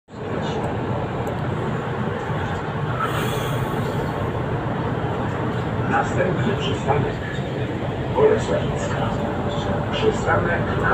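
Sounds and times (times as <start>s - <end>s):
bus engine and road noise: 0.1s - 10.9s.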